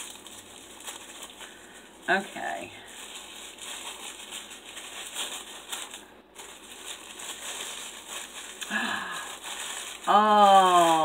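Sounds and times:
tissue paper rustling: 0.0s - 11.0s.

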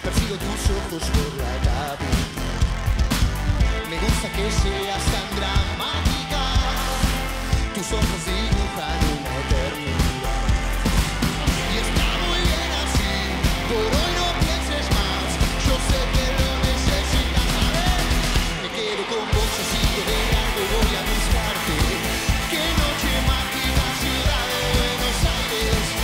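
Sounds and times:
person singing: 0.0s - 2.5s, 3.7s - 26.0s
drum beat: 0.0s - 26.0s
pop-rock band playing: 0.0s - 26.0s.

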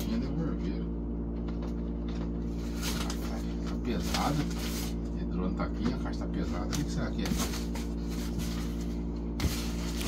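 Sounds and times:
air conditioner humming: 0.0s - 10.0s
cardboard packaging rustling: 6.8s - 10.0s.

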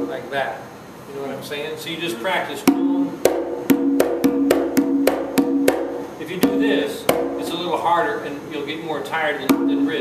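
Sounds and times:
conga drum hand strokes: 2.6s - 7.7s, 9.4s - 10.0s.

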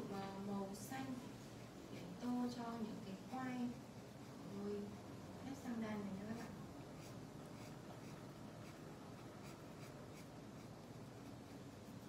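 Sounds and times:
marker rubbing on paper: 7.0s - 12.0s.

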